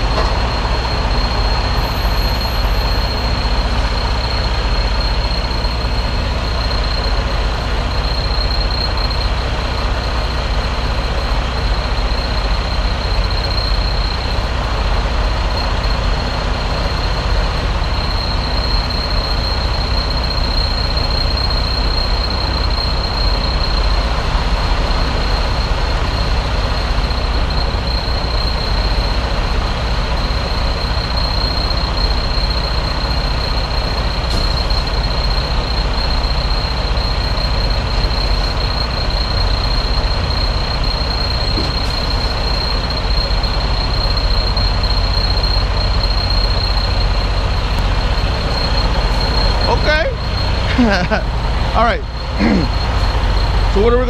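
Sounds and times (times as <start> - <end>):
constant high-pitched tone: 0.0 - 54.0
diesel truck engine running: 0.0 - 54.0.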